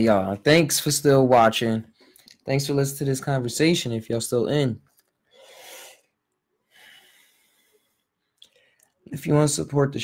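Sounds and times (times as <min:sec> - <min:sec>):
man breathing into microphone: 0:06.7 - 0:08.9.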